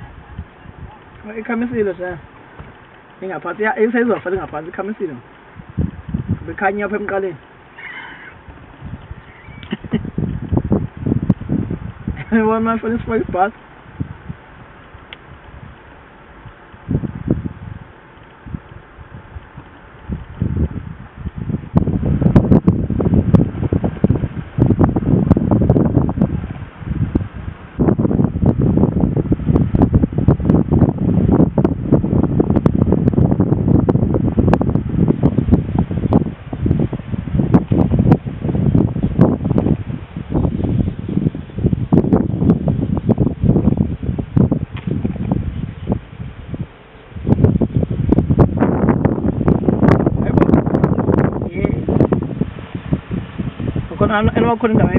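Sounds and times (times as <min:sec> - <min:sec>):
wind buffeting microphone: 0:00.0 - 0:54.9.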